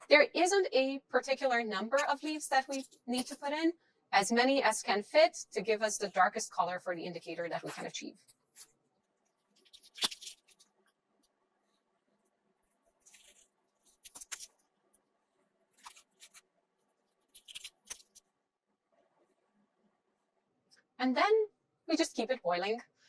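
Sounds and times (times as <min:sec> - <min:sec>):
cabbage leaves tearing: 0:09.5 - 0:10.8, 0:12.8 - 0:14.6, 0:15.7 - 0:16.4, 0:17.1 - 0:18.2.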